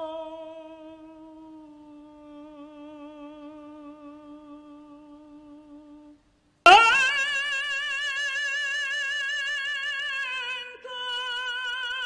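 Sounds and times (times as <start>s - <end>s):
opera singer holding high note: 6.7s - 11.0s.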